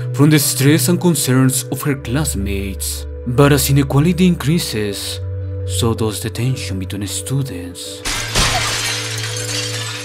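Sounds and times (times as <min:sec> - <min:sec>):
background music tones: 0:00.0 - 0:10.0
glass pane shattering: 0:08.0 - 0:10.0
glass shards falling on floor: 0:08.0 - 0:10.0.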